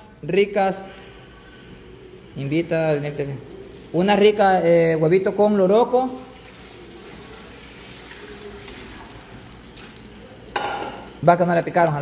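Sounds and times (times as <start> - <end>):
eggs sizzling in a pan: 0.4 - 11.3.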